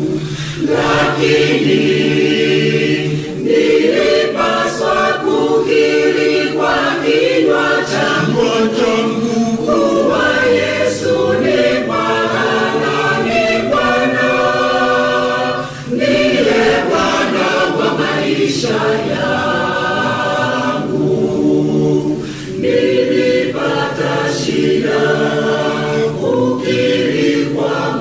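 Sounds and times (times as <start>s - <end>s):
choir singing a hymn: 0.0s - 28.0s.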